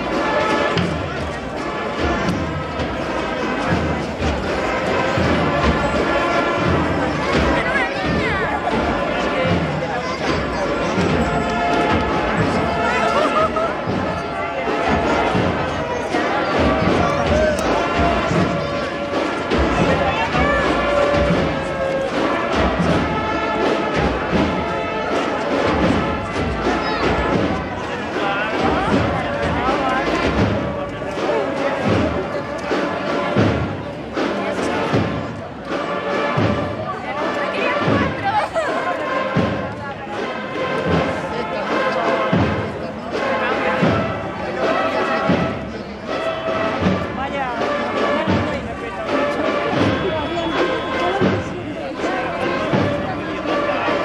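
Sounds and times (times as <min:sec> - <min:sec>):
crowd voices: 0:00.0 - 0:54.0
drum beat: 0:00.0 - 0:54.0.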